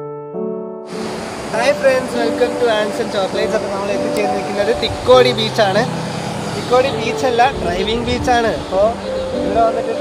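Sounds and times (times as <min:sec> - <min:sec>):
man talking: 0:01.5 - 0:05.9, 0:06.6 - 0:10.0.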